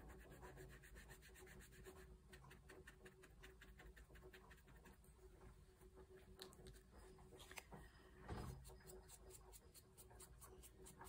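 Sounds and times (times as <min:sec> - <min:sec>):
brush scratching on paper: 0:00.0 - 0:05.4, 0:08.6 - 0:11.0.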